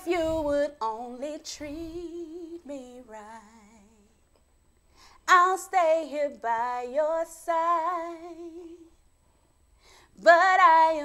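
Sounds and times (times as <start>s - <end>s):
woman singing a cappella: 0.0s - 4.3s, 5.1s - 9.1s, 10.0s - 11.0s
faint breath in: 4.8s - 5.3s, 9.2s - 10.2s.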